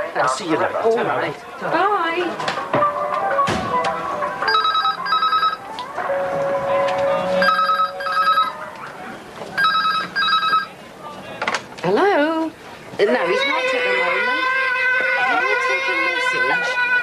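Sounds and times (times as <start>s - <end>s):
telephone double ring: 4.5s - 5.6s, 7.4s - 8.5s, 9.6s - 10.7s.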